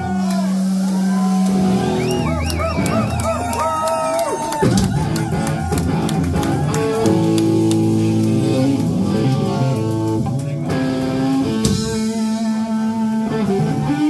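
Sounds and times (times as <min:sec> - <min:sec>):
bent wavering guitar notes: 0:00.0 - 0:14.0
rock band playing live: 0:00.0 - 0:14.0.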